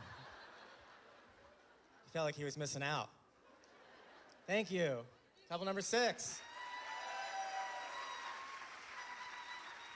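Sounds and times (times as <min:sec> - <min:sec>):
audience applauding: 0:06.4 - 0:09.9.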